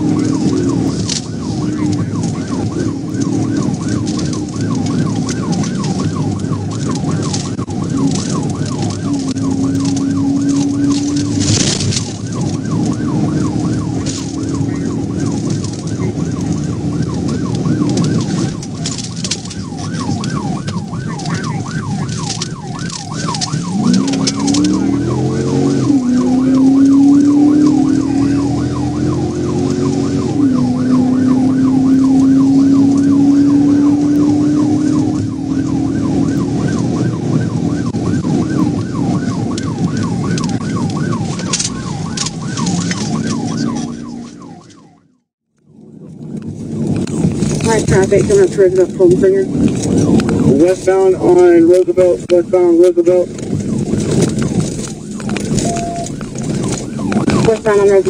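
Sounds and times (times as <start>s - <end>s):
car engine revving: 0.0s - 44.7s, 46.2s - 58.0s
police siren yelping: 0.0s - 58.0s
road and wind noise: 0.0s - 58.0s.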